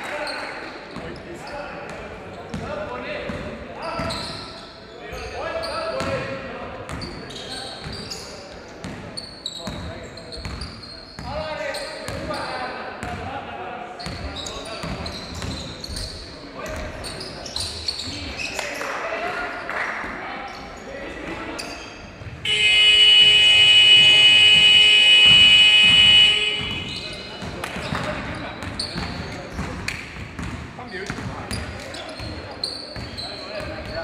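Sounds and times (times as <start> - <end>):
players' voices: 0.0 - 34.0
basketball bouncing on court: 22.2 - 32.4
game buzzer blaring: 22.5 - 26.9.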